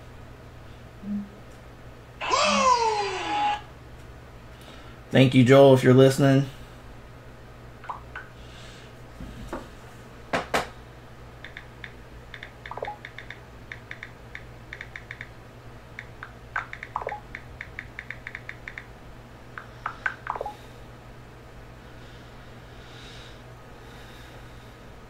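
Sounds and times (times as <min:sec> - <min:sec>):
short falling whines: 0:02.2 - 0:03.8
computer keyboard typing: 0:12.3 - 0:15.3, 0:16.0 - 0:18.9.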